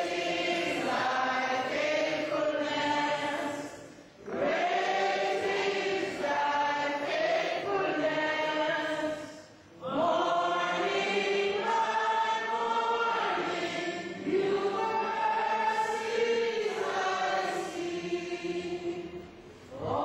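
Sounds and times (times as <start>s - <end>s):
congregation singing a hymn: 0.0s - 20.0s.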